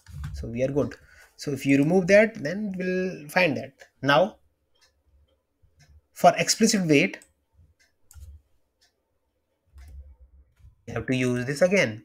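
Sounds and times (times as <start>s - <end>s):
mouse and keyboard clicks: 7.2s - 8.4s.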